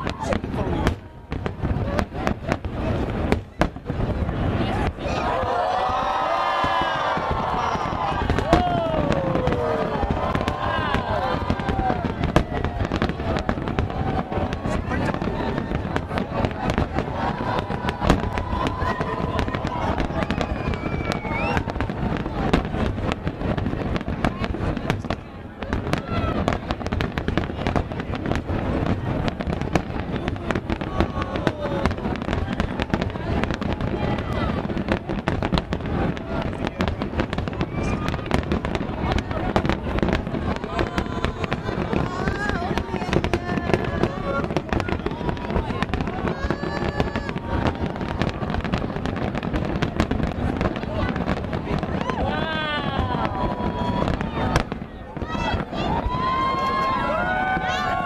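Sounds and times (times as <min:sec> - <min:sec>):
firework bangs and crackling: 0:00.0 - 0:58.0.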